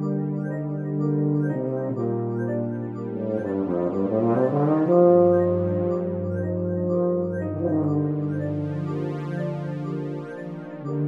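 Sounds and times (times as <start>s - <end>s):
electronic accompaniment music: 0.0s - 11.0s
tuba playing: 0.0s - 11.0s.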